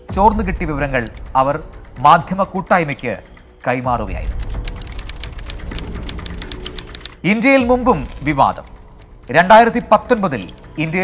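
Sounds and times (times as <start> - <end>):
fast typing on keyboard: 4.2 - 7.5.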